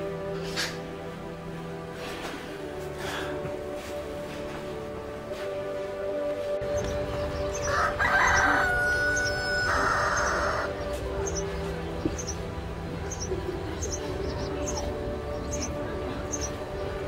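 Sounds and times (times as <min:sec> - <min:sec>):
background music: 0:00.0 - 0:17.0
small birds chirping: 0:06.6 - 0:17.0
rooster crowing: 0:07.6 - 0:10.7.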